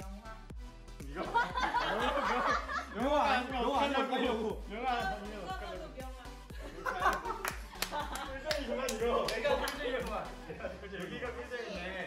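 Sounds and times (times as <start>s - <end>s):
background music with steady beat: 0.0s - 12.0s
hand claps: 7.0s - 10.3s.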